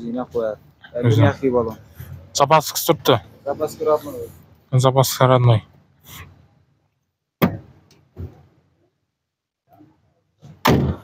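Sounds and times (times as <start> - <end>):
sharp knocks: 7.4 - 8.4, 10.5 - 11.0.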